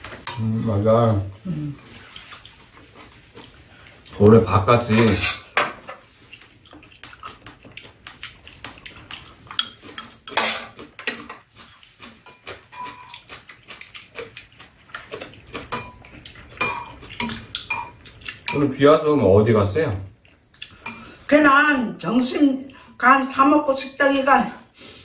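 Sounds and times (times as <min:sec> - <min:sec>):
metal spoons scraping ceramic bowls: 0:00.2 - 0:00.8, 0:04.6 - 0:06.1, 0:09.0 - 0:13.8, 0:15.2 - 0:18.8, 0:20.8 - 0:21.4
eating sounds: 0:01.3 - 0:04.5, 0:06.1 - 0:18.6, 0:20.1 - 0:21.2.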